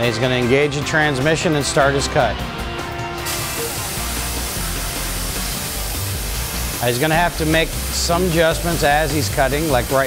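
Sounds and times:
background music: 0.0 - 10.0
cutting torch hissing: 3.2 - 10.0.

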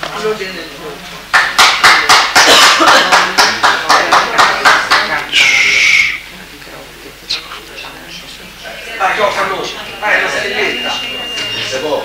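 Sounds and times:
rhythmic hand clapping: 1.2 - 5.3.

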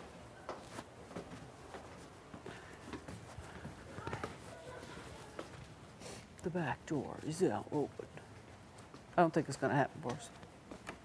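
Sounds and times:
footsteps on hard floor: 0.5 - 5.7
faint voices: 2.5 - 8.3.

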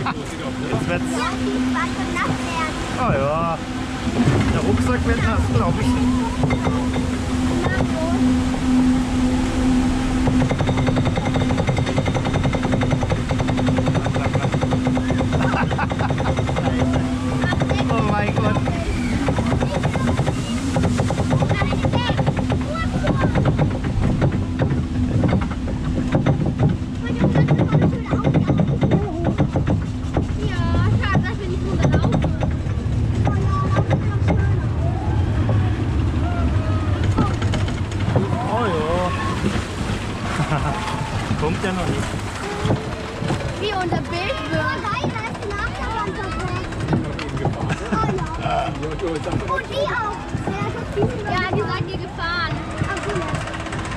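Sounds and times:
boat rushing down water chute: 0.0 - 53.9
conveyor lift hum: 0.0 - 53.9
people shouting: 34.7 - 37.5, 38.2 - 41.4.

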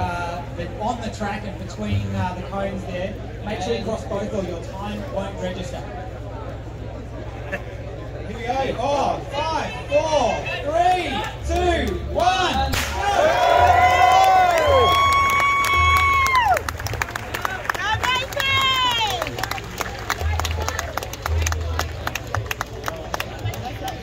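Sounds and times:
crowd shouting and cheering: 9.2 - 24.0
long held whoop: 13.0 - 16.6
sharp claps: 14.5 - 24.0.

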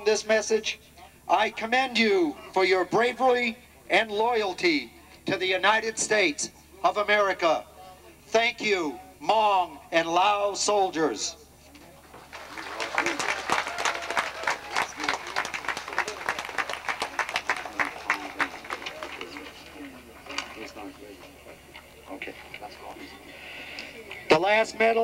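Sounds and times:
voices: 0.0 - 25.0
crowd clapping: 12.0 - 22.8.

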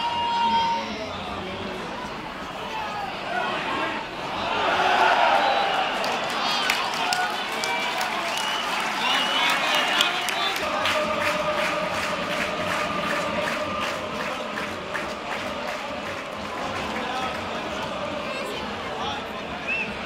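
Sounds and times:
spectators talking: 0.0 - 20.0
stadium crowd noise: 0.0 - 20.0
rhythmic clapping: 6.0 - 18.1.

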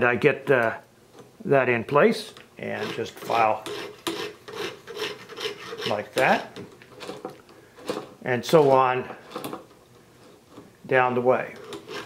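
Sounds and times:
file rasping on steel: 2.6 - 6.5, 11.5 - 12.0.

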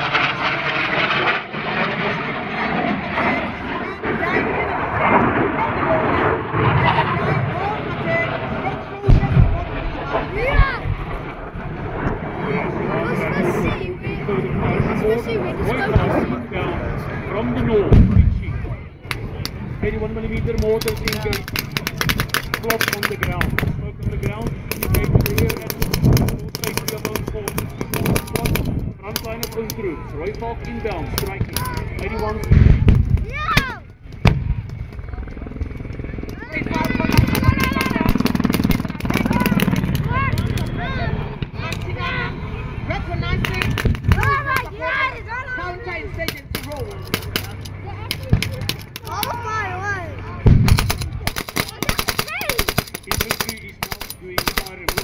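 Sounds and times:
explosions: 0.0 - 13.8, 17.9 - 18.8, 31.1 - 35.4, 43.3 - 44.6, 50.4 - 53.3
voices: 1.9 - 55.0
gunfire: 20.8 - 23.7, 24.7 - 29.7, 36.8 - 40.6, 43.4 - 44.6, 46.3 - 49.1, 50.5 - 55.0.

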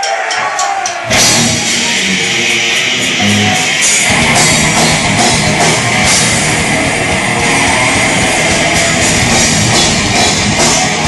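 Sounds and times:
death metal band playing live: 0.0 - 11.0.

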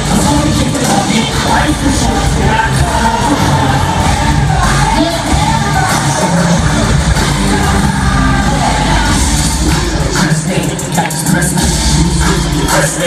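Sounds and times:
crowd yelling and cheering: 0.0 - 13.0
loud live concert music: 0.0 - 13.0
person singing: 0.0 - 13.0.

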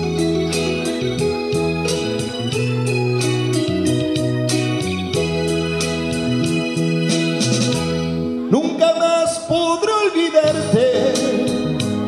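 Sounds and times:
slow ballad on electronic organ: 0.0 - 12.0.

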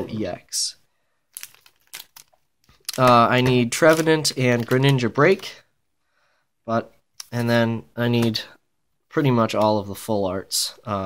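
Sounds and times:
crinkles of handling: 1.3 - 5.6.

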